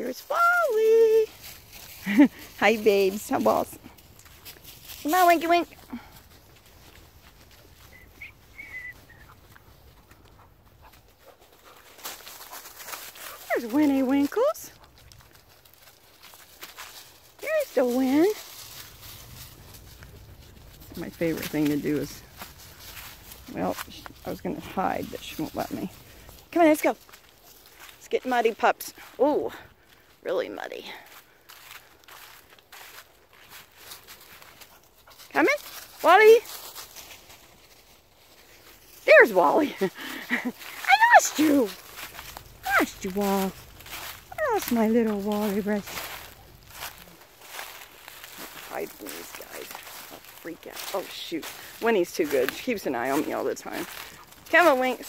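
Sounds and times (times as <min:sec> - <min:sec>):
footsteps through dry leaves: 0:00.1 - 0:55.0.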